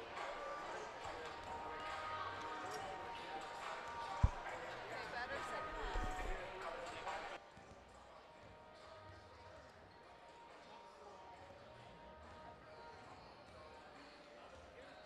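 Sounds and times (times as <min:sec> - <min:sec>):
low crowd chatter: 0:00.0 - 0:15.0.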